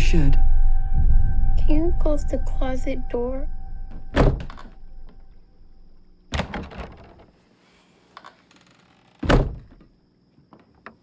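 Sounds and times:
heavy thud on wooden door: 0:04.1 - 0:04.6, 0:09.2 - 0:09.8.

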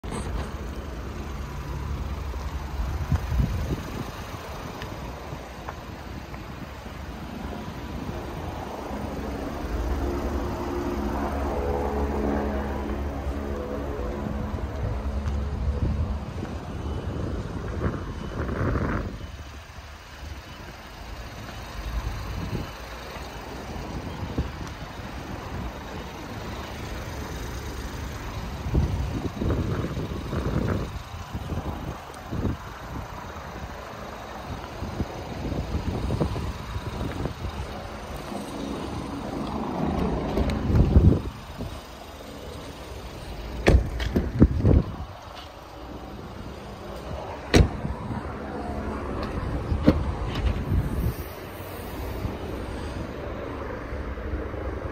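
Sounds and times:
outdoor rumble: 0:00.0 - 0:54.9
car door shutting with thump: 0:43.6 - 0:44.8, 0:47.5 - 0:47.9.

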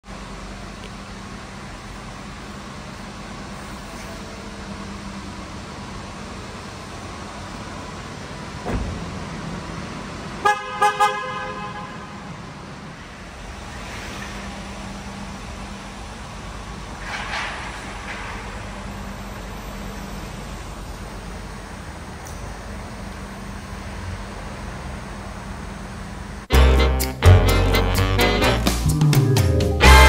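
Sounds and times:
car door shutting: 0:08.6 - 0:09.2
car horn toots: 0:10.4 - 0:12.3, 0:26.5 - 0:28.8, 0:29.8 - 0:30.0
soft rising vehicle noise: 0:12.2 - 0:26.5.

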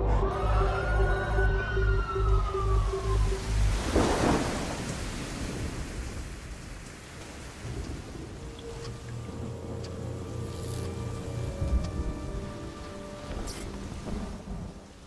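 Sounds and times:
thunder-like rumble: 0:02.2 - 0:12.5
rain-like hiss: 0:02.5 - 0:15.0.

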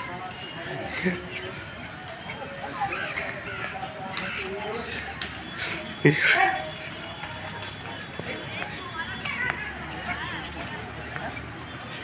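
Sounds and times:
people talking some way off: 0:00.0 - 0:12.0.

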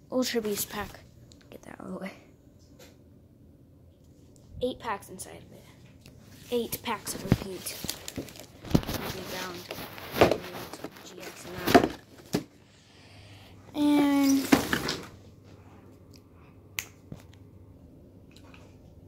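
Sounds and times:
packaging rustling and crinkling: 0:06.5 - 0:12.5, 0:14.0 - 0:15.2.

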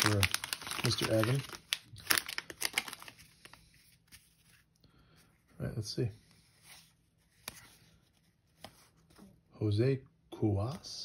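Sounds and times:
plastic wrapper crinkling: 0:00.0 - 0:04.5.

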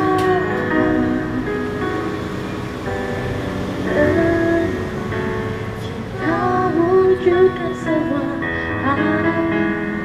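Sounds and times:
electronic keyboard chords: 0:00.0 - 0:10.0.

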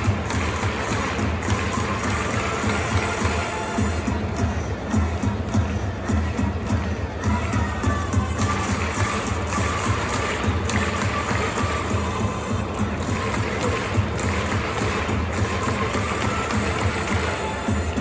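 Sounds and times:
crowd clapping in time: 0:00.0 - 0:06.7, 0:08.1 - 0:18.0
stadium cheering music: 0:00.0 - 0:18.0.

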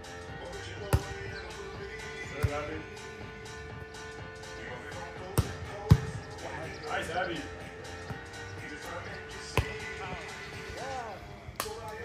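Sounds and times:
background music: 0:00.0 - 0:12.0
volleyball struck by hand: 0:00.9 - 0:01.1, 0:02.4 - 0:02.7, 0:05.4 - 0:06.2, 0:09.6 - 0:09.8.

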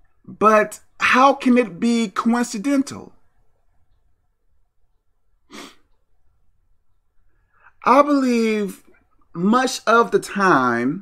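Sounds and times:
man taking a sharp breath: 0:05.5 - 0:05.9.

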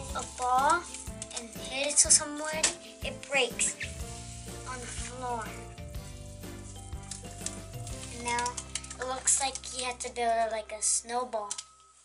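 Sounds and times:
hands squishing gel granules: 0:06.0 - 0:10.1.

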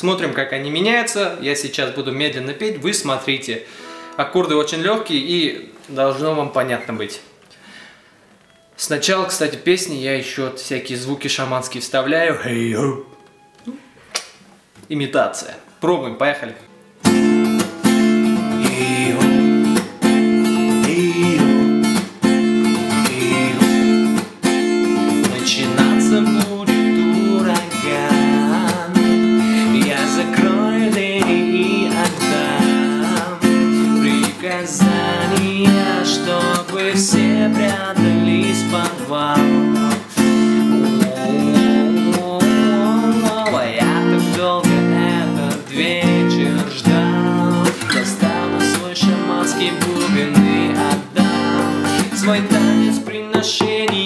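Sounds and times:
acoustic guitar strummed: 0:03.7 - 0:04.3, 0:16.9 - 0:54.0
man singing: 0:12.2 - 0:13.2, 0:18.4 - 0:19.8, 0:20.4 - 0:21.9, 0:22.7 - 0:24.1, 0:25.1 - 0:54.0.

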